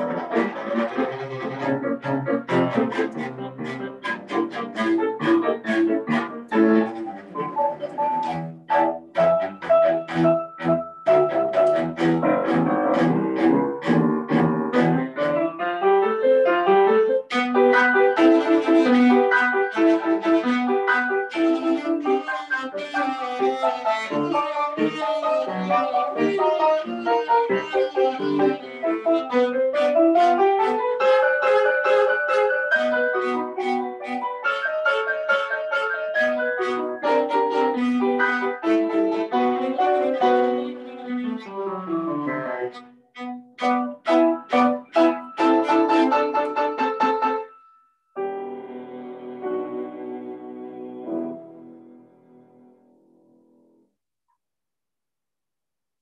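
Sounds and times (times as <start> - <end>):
bowed cello: 0.0 - 47.4, 48.2 - 52.6.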